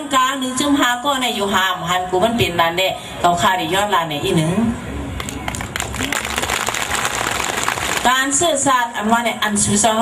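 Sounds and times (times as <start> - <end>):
audience applauding: 5.2 - 8.2.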